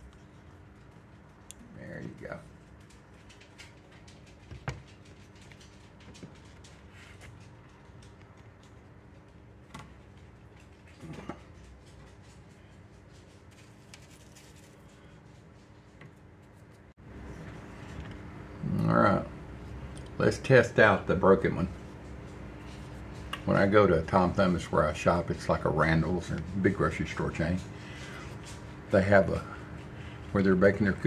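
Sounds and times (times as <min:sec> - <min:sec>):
faint steady hum: 0:00.0 - 0:31.0.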